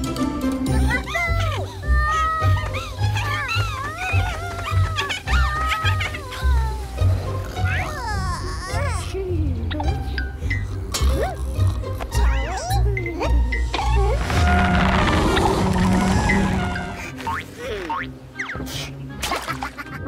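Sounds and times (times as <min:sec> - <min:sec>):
high cartoon voices chattering: 0:00.7 - 0:10.0.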